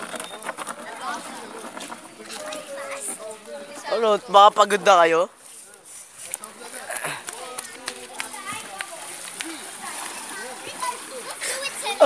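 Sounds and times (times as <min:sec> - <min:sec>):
children's voices: 0:00.0 - 0:04.6, 0:06.3 - 0:12.0
water splashing in pool: 0:06.4 - 0:12.0.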